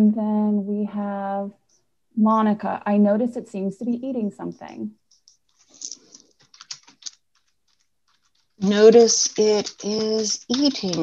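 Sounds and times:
typing on keyboard: 0:04.5 - 0:11.0.

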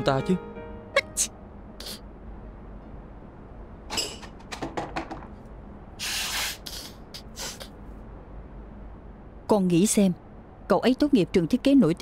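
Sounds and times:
woman blowing her nose: 0:06.0 - 0:07.7.

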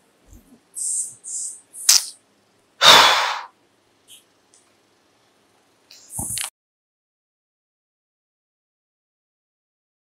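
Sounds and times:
sharp click: 0:01.8 - 0:02.2
woman's breathy hisses: 0:02.8 - 0:03.5.

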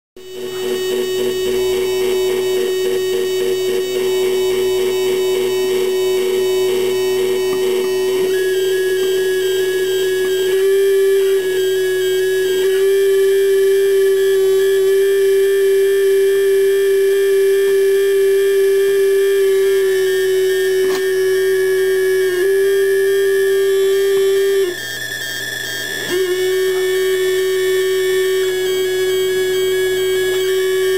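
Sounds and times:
electronic drone: 0:00.2 - 0:30.9
click: 0:20.9 - 0:21.1.

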